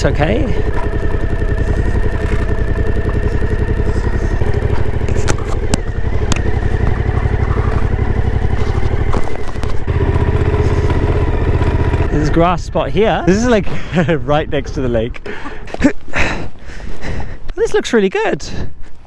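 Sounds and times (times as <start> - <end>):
motorcycle engine at low speed: 0.0 - 17.4.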